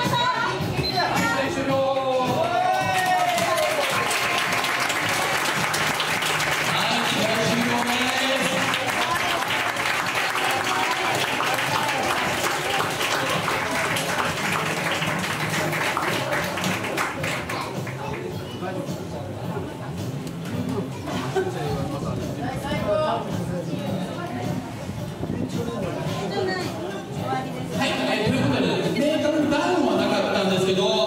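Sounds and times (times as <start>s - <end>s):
music: 0.0s - 31.0s
audience applauding: 2.0s - 18.3s.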